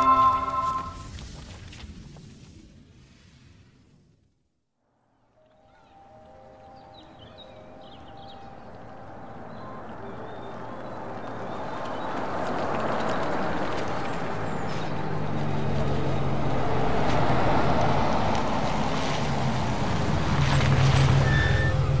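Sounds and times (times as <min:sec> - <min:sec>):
car engine approaching: 0:07.2 - 0:22.0
low engine hum: 0:07.5 - 0:22.0.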